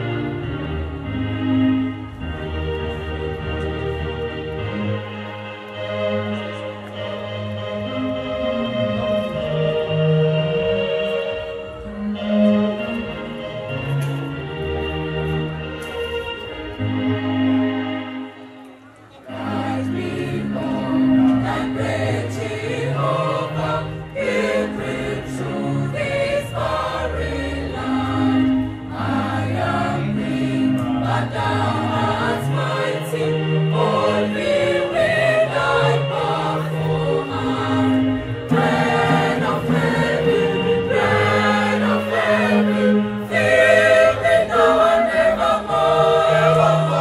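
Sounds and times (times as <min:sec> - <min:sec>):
mixed choir singing: 0:00.0 - 0:02.8, 0:19.2 - 0:47.0.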